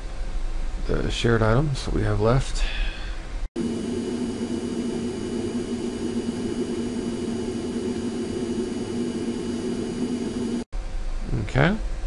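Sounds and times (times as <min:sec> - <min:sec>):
faint steady whine: 0:00.0 - 0:12.0
machine hum: 0:03.0 - 0:11.3.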